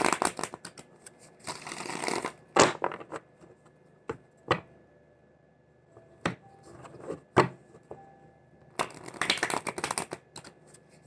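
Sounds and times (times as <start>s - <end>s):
cards being shuffled: 8.8s - 11.0s.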